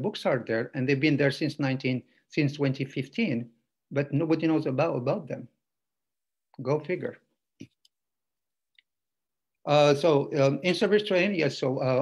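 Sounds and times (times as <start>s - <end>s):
man speaking: 6.6s - 7.3s.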